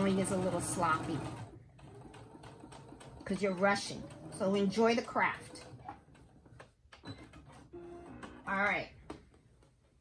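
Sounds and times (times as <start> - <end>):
sewing machine clicks: 0.0 - 8.4
sewing machine low hum: 0.0 - 10.0.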